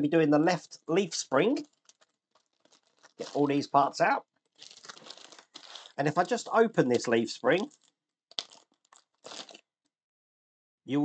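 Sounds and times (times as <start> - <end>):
plastic bag crinkling: 1.4 - 9.6.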